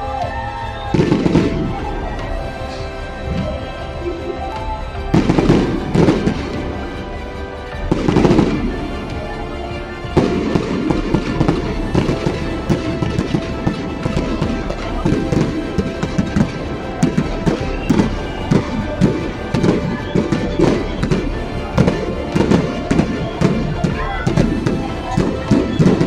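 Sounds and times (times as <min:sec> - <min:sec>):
fireworks cracking and popping: 0:00.0 - 0:26.0
music playing: 0:00.0 - 0:26.0.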